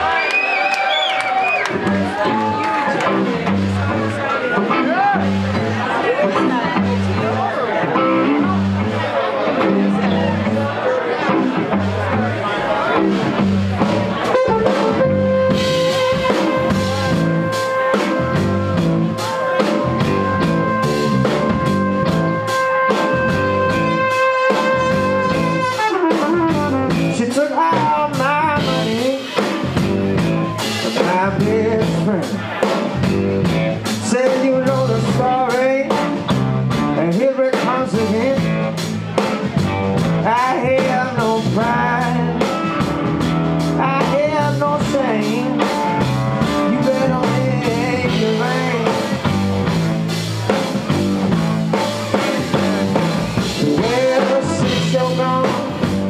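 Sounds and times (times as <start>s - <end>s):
blues-rock band playing: 0.0s - 56.0s
electric guitar lead line: 1.5s - 56.0s.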